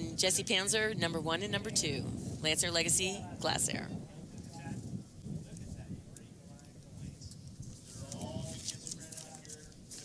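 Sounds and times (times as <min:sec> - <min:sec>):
faint background voices: 0:01.6 - 0:10.0.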